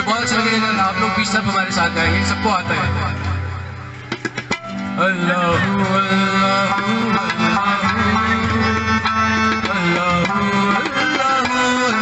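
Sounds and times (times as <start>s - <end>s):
tabla strokes: 1.0s - 12.0s
person singing: 5.0s - 12.0s.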